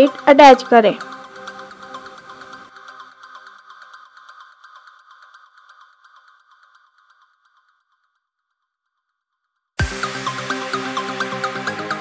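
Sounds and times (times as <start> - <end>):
electronic music with ticking rhythm: 0.0 - 7.7.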